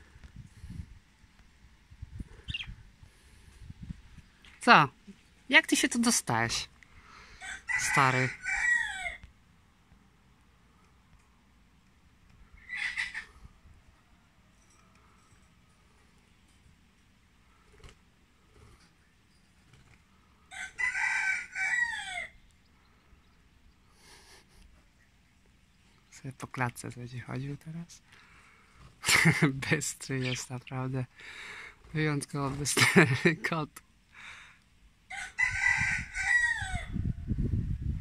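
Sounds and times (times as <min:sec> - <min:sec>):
rooster crowing: 0:07.3 - 0:09.3, 0:20.5 - 0:22.4, 0:35.1 - 0:37.2.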